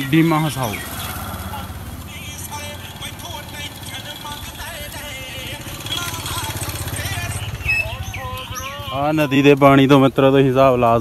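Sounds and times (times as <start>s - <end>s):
motorcycle engine passing: 0.0s - 9.6s
voices of people in street: 0.0s - 11.0s.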